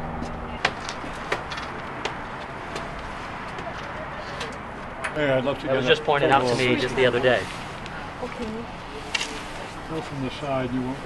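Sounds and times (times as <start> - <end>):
outdoor background noise: 0.0 - 11.0.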